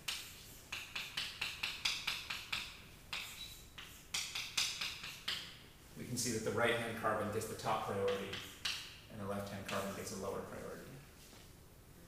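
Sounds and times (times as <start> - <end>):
chalk writing on chalkboard: 0.0 - 5.6, 7.8 - 10.1.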